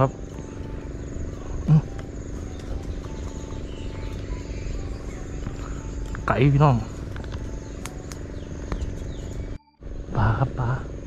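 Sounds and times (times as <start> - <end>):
high insect whine: 0.0 - 11.0
low droning hum: 0.0 - 11.0.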